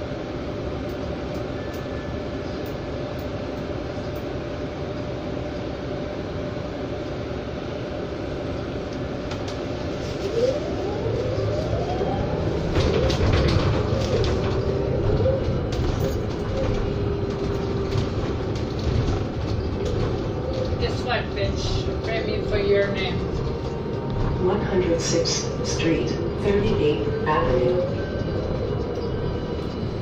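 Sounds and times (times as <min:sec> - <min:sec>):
electric bus motor whine: 0:00.0 - 0:30.0
road rumble: 0:00.0 - 0:30.0
interior rattling: 0:12.3 - 0:29.8.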